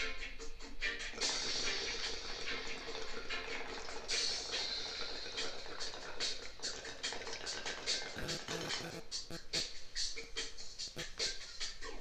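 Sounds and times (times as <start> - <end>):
water bubbling in a bong: 1.4 - 8.8.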